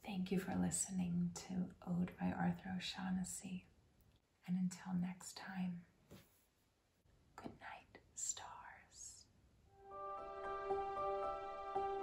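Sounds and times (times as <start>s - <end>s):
woman whispering: 4.4s - 5.9s, 7.4s - 9.4s.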